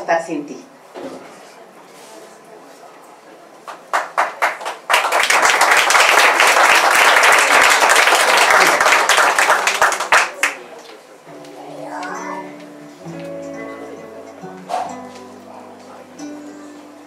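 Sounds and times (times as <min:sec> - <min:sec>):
audience applauding: 0:03.7 - 0:10.8.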